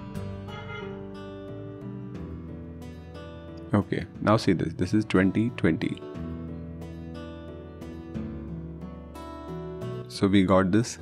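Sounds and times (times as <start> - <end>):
acoustic guitar background music: 0.0 - 11.0.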